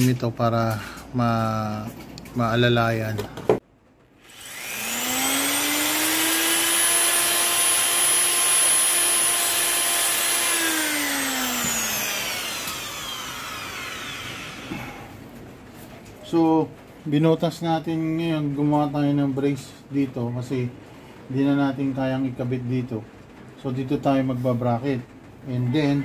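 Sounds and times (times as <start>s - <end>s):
electric drill boring through metal: 4.2s - 15.1s.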